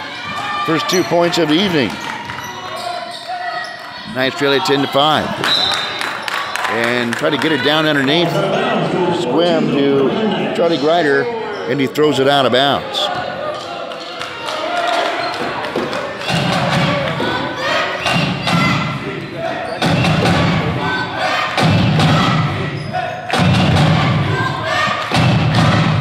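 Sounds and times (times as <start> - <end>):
crowd chatter: 0.0 - 26.0.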